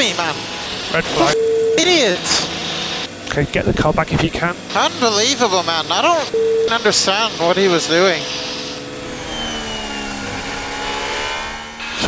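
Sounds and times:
race car engine running: 0:00.0 - 0:12.0.

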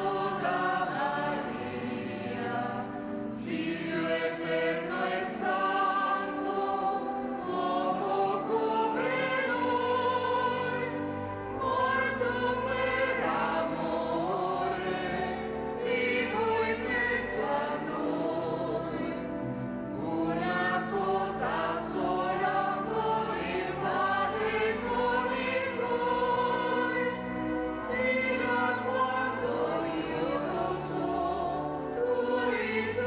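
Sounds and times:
choir singing a slow hymn: 0:00.0 - 0:33.0.

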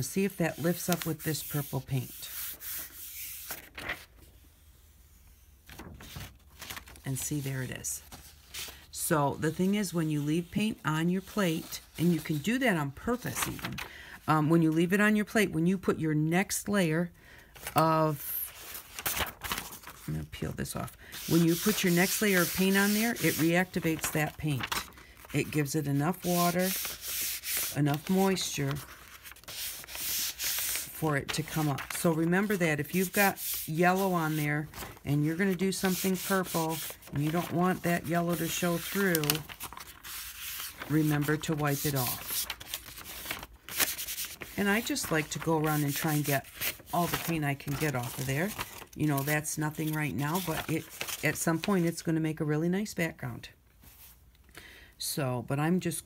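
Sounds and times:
hand rubbing paper: 0:00.0 - 0:04.4, 0:21.1 - 0:51.8
paper peeling off gel: 0:05.7 - 0:07.4, 0:18.5 - 0:20.1, 0:21.1 - 0:51.7.

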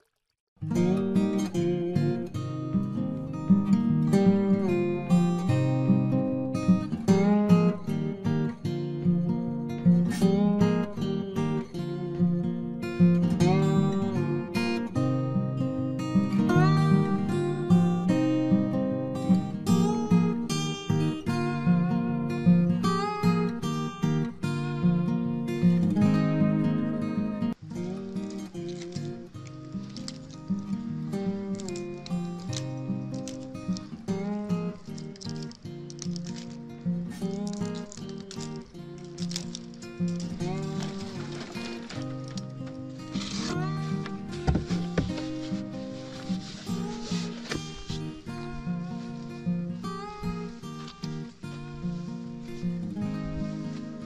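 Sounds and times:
rustles: 0:00.0 - 0:54.0
acoustic guitar music: 0:00.6 - 0:54.0.

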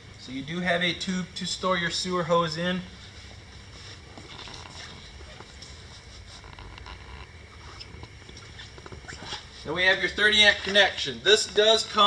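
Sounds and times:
faint high whine: 0:00.0 - 0:12.0
low hum: 0:00.0 - 0:12.0
faint ticks and scuffs: 0:02.4 - 0:12.0.

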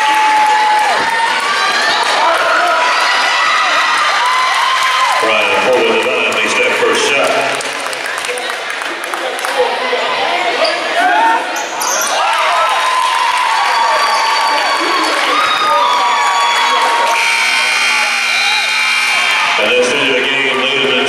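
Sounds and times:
crowd shouting and cheering: 0:00.0 - 0:21.0
scoreboard horn: 0:17.1 - 0:20.2.

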